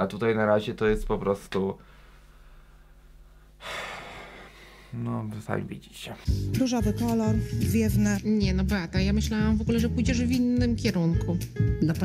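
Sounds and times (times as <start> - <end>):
person breathing: 1.8 - 5.0.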